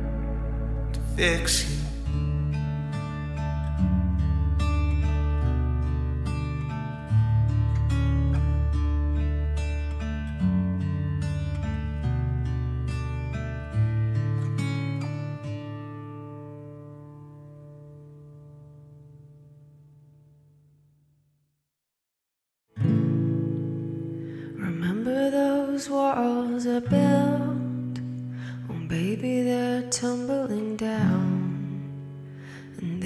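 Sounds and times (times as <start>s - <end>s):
steady low bass: 0.0s - 6.1s
acoustic guitar music: 0.0s - 21.0s, 22.7s - 33.0s.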